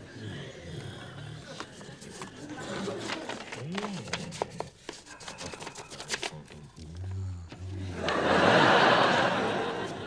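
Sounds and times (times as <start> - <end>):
paper envelopes crackling and tearing: 1.5 - 7.7.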